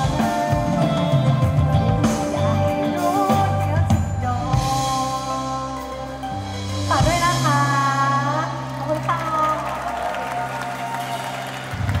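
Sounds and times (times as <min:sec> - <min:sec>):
woman singing: 0:00.0 - 0:09.9.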